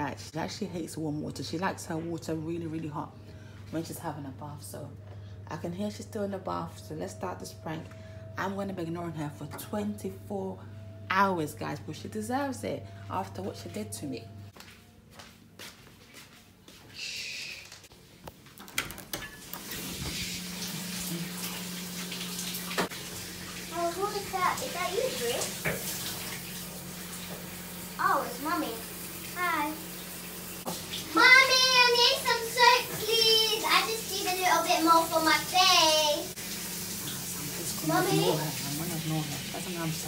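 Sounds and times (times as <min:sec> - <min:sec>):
low hum: 0:01.8 - 0:14.6
water running: 0:18.5 - 0:40.0
child singing: 0:31.1 - 0:36.3.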